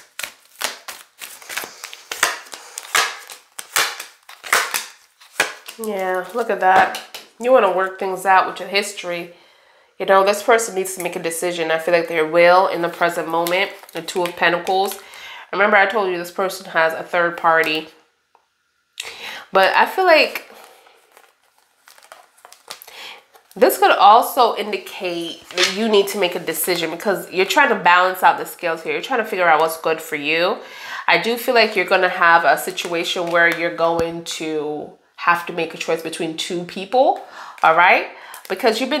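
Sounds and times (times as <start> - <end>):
cards being shuffled: 0.0 - 7.3, 12.8 - 15.1, 20.5 - 23.6, 25.3 - 26.8
cards dropping on table: 2.1 - 5.8.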